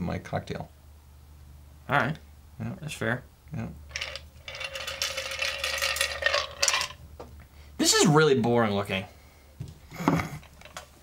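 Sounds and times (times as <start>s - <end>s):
ice and metal clinking: 3.9s - 7.0s.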